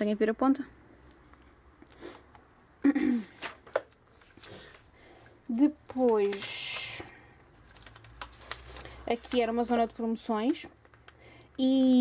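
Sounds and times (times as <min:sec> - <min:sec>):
catalogue pages turning: 0:03.2 - 0:11.0.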